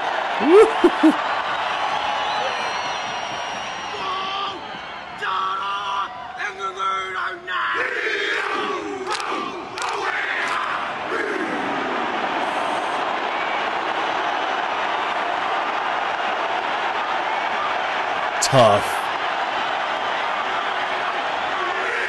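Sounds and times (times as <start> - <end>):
stadium crowd roaring: 0.0 - 22.0.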